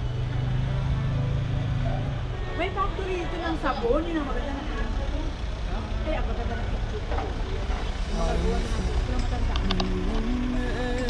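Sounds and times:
traffic rumble: 0.0s - 11.0s
people talking: 2.6s - 11.0s.

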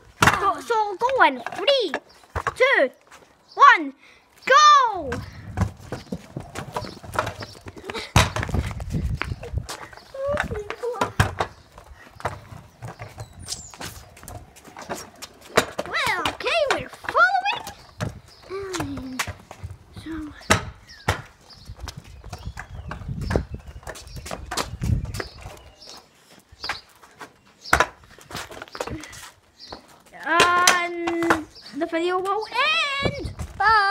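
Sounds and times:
scooter wheels rolling on paving: 4.4s - 33.9s
child calling out: 32.5s - 33.9s.

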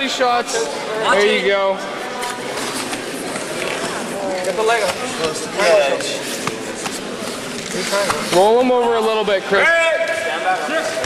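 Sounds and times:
murmur of crowd voices: 0.0s - 11.0s.

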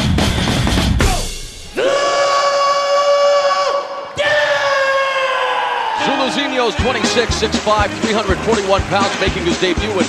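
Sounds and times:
announcer shouting drawn-out calls: 1.8s - 10.0s.

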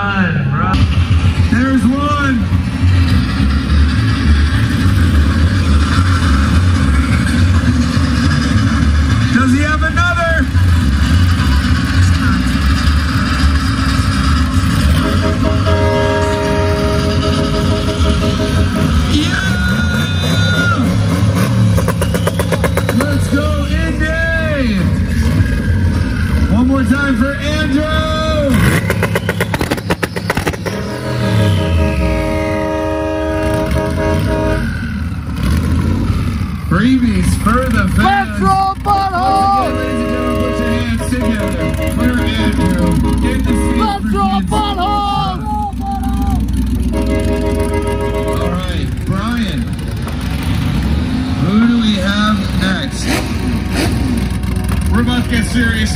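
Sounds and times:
car engine revving: 0.7s - 55.9s.

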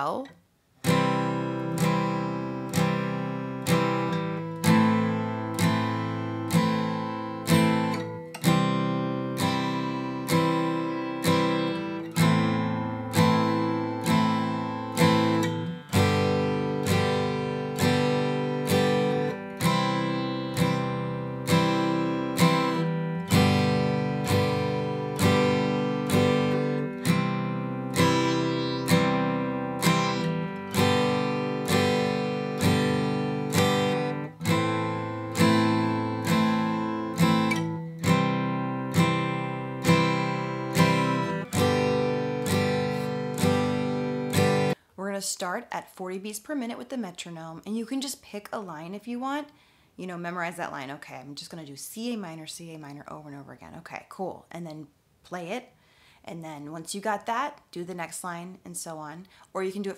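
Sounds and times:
guitar strummed in downstrokes: 0.9s - 44.8s.

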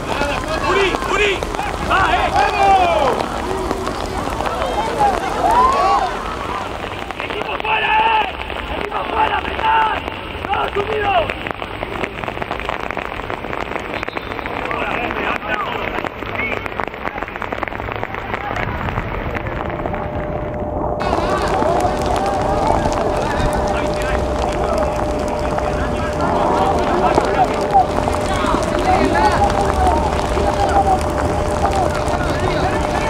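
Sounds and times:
voices calling out: 0.0s - 20.2s, 21.0s - 33.0s
rain hissing: 0.0s - 33.0s.

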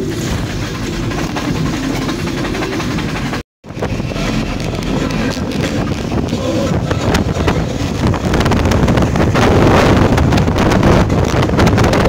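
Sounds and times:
vehicle road rumble: 3.6s - 12.0s.

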